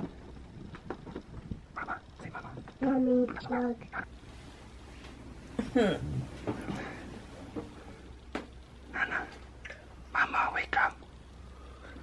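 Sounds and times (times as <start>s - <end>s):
faint room hum: 0.0s - 12.0s
person whispering: 1.8s - 4.1s, 8.9s - 11.1s.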